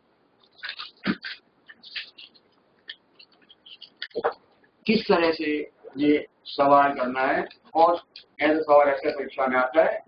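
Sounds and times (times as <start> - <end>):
paper rustling: 0.4 - 4.4.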